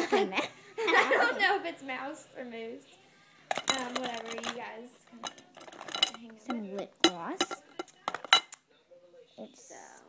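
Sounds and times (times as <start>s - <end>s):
makeup containers clinking: 3.5s - 8.6s.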